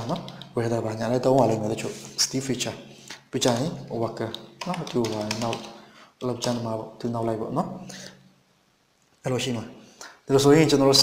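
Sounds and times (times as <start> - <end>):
man speaking: 0.0 - 8.1, 9.2 - 11.0
keyboard keystrokes: 4.2 - 5.7.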